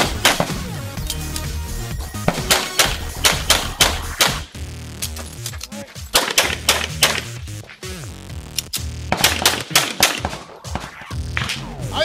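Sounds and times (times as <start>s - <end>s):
handgun shots: 0.0s - 1.2s, 2.3s - 4.5s, 6.1s - 7.3s, 8.7s - 11.6s.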